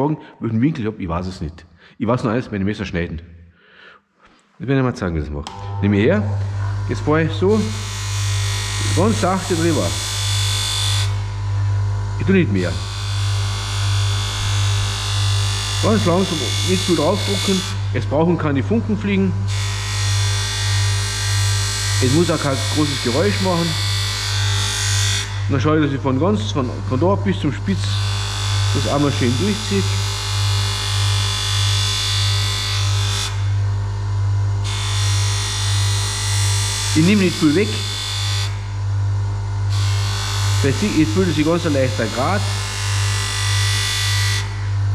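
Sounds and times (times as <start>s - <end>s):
knife blade on grinding wheel: 5.5s - 18.0s
bench grinder humming: 5.5s - 44.9s.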